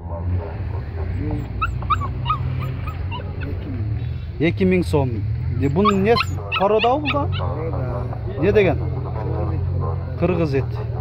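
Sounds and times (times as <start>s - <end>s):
dogs whimpering and yipping: 1.1s - 3.7s, 5.5s - 7.9s.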